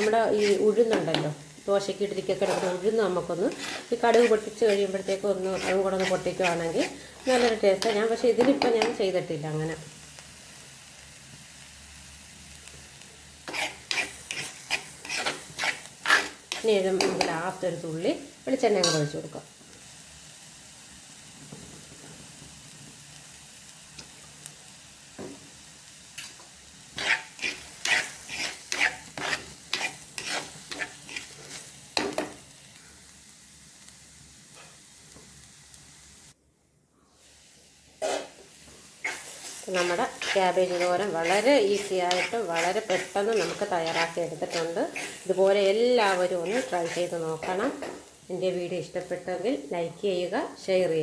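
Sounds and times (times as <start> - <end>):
stirring scrapes against pan: 0.0 - 1.3, 2.2 - 9.0, 13.4 - 17.4, 26.9 - 32.4, 38.0 - 38.4, 39.0 - 48.0
cabbage sizzling in a pan: 0.0 - 36.4, 37.0 - 51.0.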